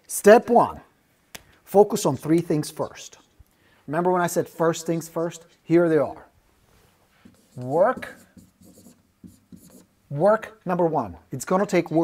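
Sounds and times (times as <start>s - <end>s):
marker scratching on whiteboard: 7.2s - 9.9s.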